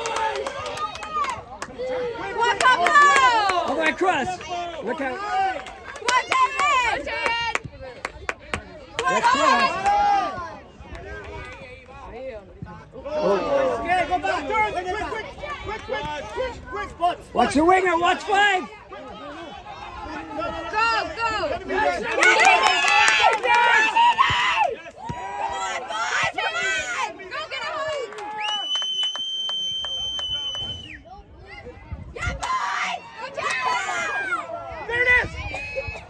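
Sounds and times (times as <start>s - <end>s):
players and spectators shouting: 0.0s - 28.6s, 30.8s - 36.0s.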